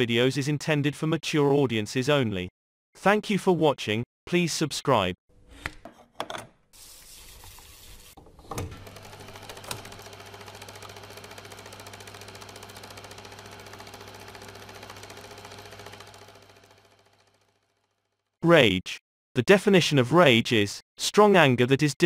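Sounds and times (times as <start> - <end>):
film projector clattering: 8.6 - 18.1.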